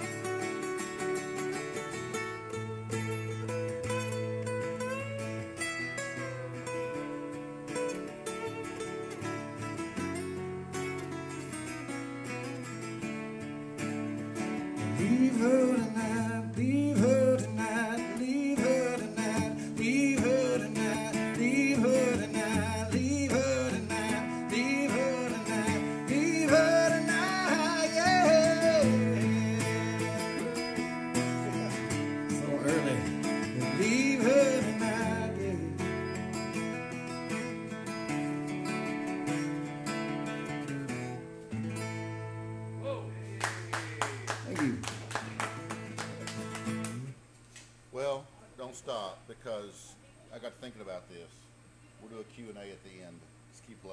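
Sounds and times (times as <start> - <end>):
acoustic guitar strumming: 0.0 - 47.3
man singing: 14.8 - 36.2.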